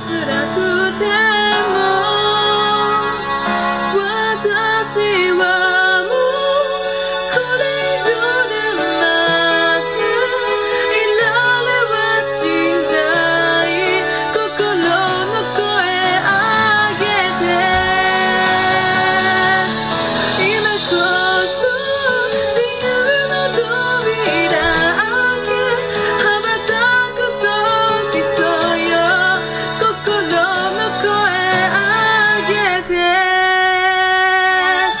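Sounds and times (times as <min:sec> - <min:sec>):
instrumental backing track: 0:00.0 - 0:35.0
woman singing a ballad: 0:00.0 - 0:35.0.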